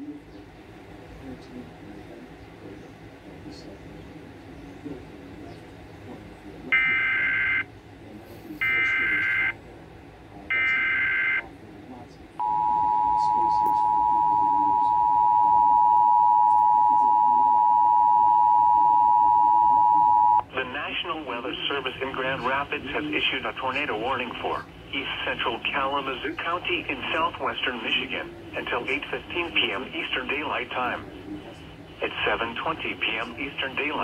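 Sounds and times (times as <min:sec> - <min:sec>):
two-tone attention signal: 0:06.8 - 0:07.7, 0:08.6 - 0:09.6, 0:10.5 - 0:11.4, 0:12.4 - 0:20.4.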